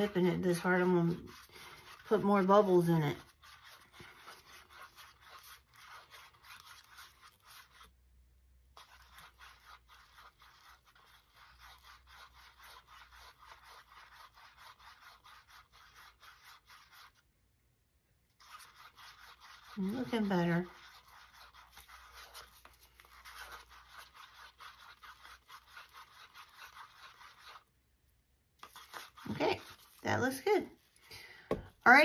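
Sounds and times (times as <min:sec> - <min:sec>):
stir stick scratching in paper cup: 0:00.0 - 0:17.3, 0:18.3 - 0:27.8, 0:28.6 - 0:31.0.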